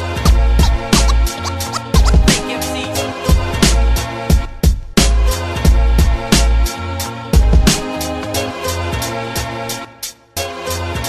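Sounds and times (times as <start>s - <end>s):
turntable scratches: 0.0s - 3.0s
hip hop beat: 0.0s - 6.8s.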